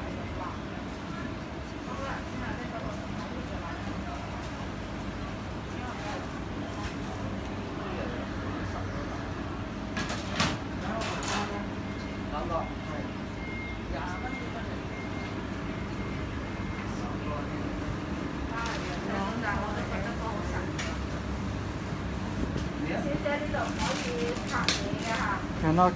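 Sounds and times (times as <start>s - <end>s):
steady background hum: 0.0s - 25.9s.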